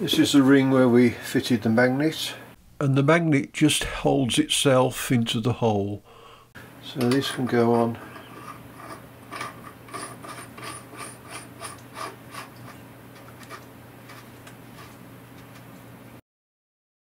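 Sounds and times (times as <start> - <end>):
metal nut clicking and rubbing: 7.0 - 15.6.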